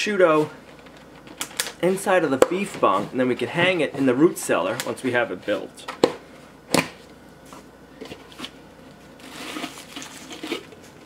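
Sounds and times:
plastic bag crinkling: 9.2 - 11.0.

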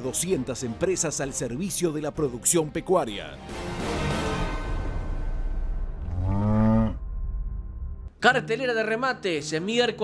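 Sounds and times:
cow mooing: 6.0 - 7.0.

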